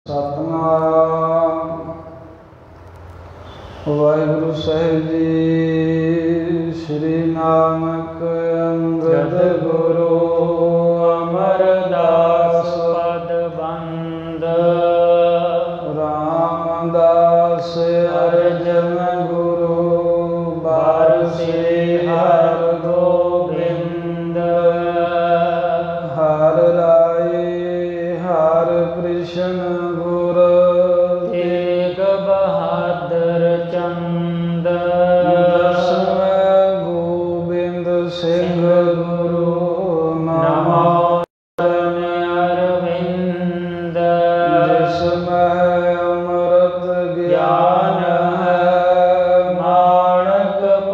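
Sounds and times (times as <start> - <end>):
man chanting: 0.1 - 2.4, 3.5 - 50.9
steady drone: 0.1 - 50.9.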